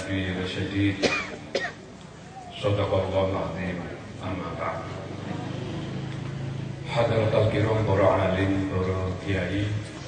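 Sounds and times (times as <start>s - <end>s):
man coughing into a microphone: 0.9s - 1.9s
man speaking: 6.8s - 9.9s.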